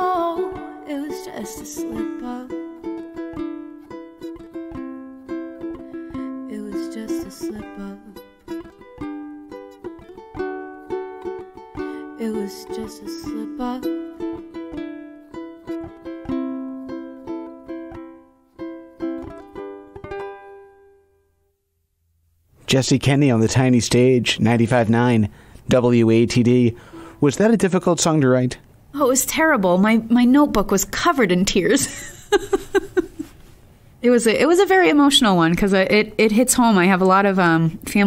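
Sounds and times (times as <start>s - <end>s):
ukulele strummed and picked: 0.0s - 21.0s, 26.8s - 27.2s.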